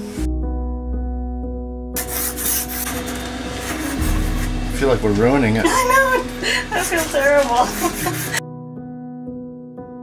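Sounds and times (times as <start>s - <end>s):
background music with bass: 2.6s - 10.0s.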